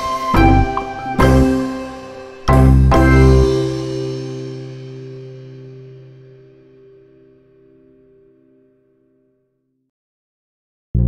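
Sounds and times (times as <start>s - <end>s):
held music chord: 0.0s - 7.2s.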